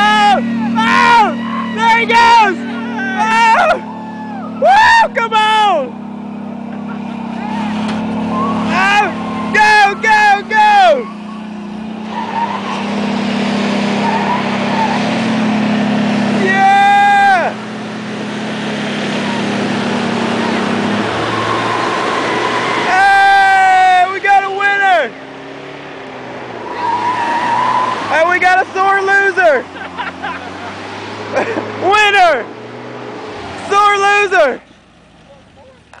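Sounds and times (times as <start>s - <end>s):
truck engine at high revs: 0.0s - 36.0s.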